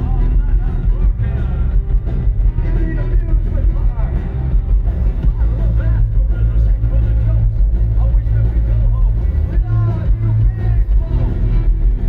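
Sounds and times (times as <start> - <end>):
booming bass: 0.0 - 12.0
live rock band: 0.0 - 12.0.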